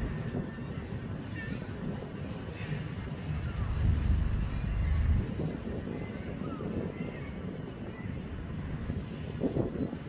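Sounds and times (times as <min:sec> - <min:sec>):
low rumble of harbour noise: 0:00.0 - 0:10.0.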